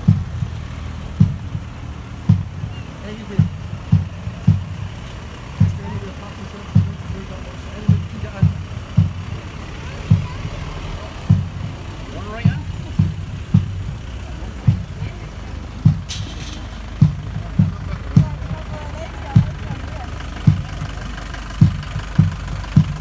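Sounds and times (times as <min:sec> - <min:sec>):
bass drum beating march time: 0:00.0 - 0:23.0
crowd chatter: 0:00.0 - 0:23.0.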